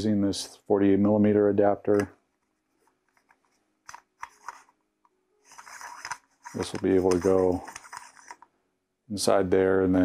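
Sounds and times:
threaded pieces scraping: 0:02.4 - 0:04.7, 0:05.4 - 0:08.5.

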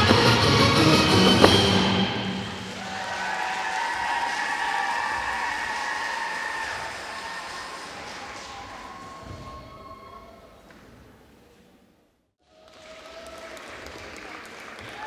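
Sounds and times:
audience applause: 0:01.1 - 0:09.8, 0:12.4 - 0:15.0.

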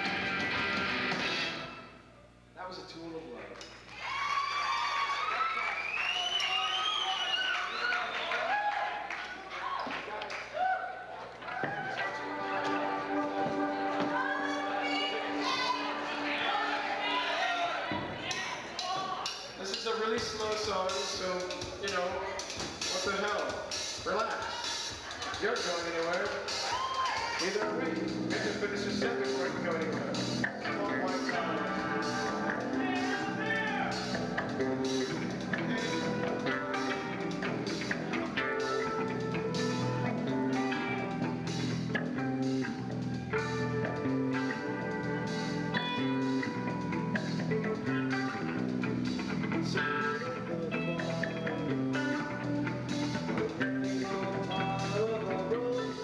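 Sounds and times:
live rock band: 0:00.0 - 0:01.8, 0:20.3 - 0:56.0
man singing: 0:27.6 - 0:33.9, 0:53.8 - 0:56.0.

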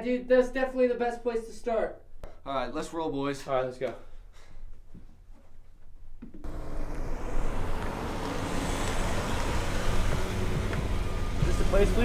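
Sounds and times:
car engine and tyre noise: 0:06.4 - 0:12.0.

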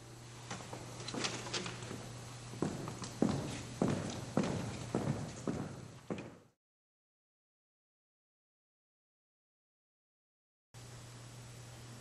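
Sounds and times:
low steady hum: 0:00.0 - 0:06.6, 0:10.8 - 0:12.0
footsteps walking: 0:00.5 - 0:06.5.

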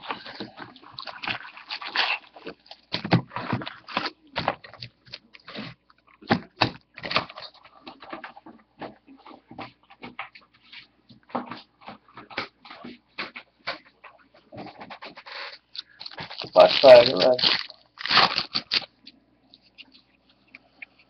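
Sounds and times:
foil packs rustling and knocking: 0:01.2 - 0:10.3, 0:14.5 - 0:18.9.

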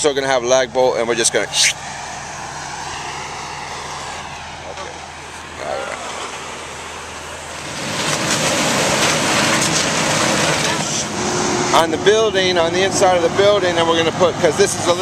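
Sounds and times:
vehicle engine humming: 0:00.0 - 0:15.0
rushing noise: 0:01.4 - 0:13.4.

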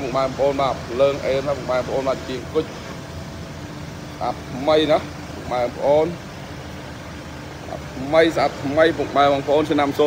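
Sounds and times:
van engine idling: 0:00.0 - 0:10.0.

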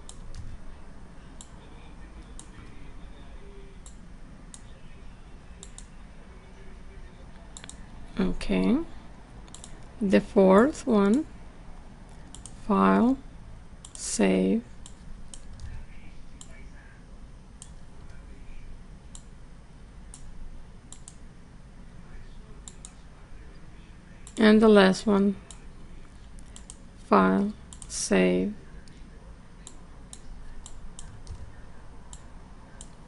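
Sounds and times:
computer mouse clicks: 0:00.0 - 0:00.5, 0:05.6 - 0:05.9, 0:07.3 - 0:07.9, 0:09.4 - 0:09.9, 0:12.1 - 0:12.6, 0:13.8 - 0:14.0, 0:14.8 - 0:15.8, 0:17.6 - 0:18.2, 0:19.1 - 0:19.3, 0:20.9 - 0:21.2, 0:22.6 - 0:23.0, 0:26.3 - 0:26.8, 0:27.7 - 0:28.0, 0:29.6 - 0:31.5, 0:32.1 - 0:33.0
faint low hum: 0:00.0 - 0:33.0
low background noise: 0:00.0 - 0:33.0.

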